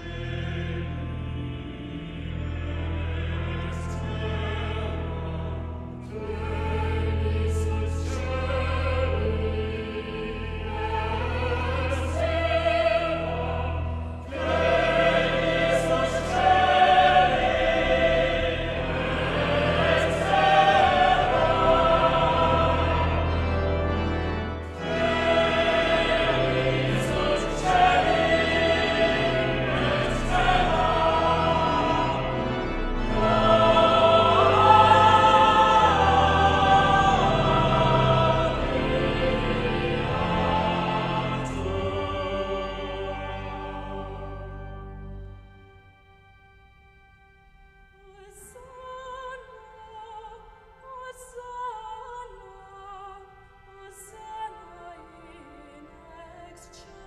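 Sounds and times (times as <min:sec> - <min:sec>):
church choir singing: 0:00.0 - 0:57.0
pipe organ: 0:00.0 - 0:57.0.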